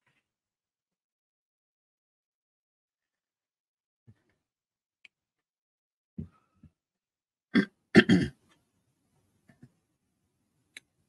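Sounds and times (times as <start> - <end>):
person's rough throat noises: 7.5 - 8.5.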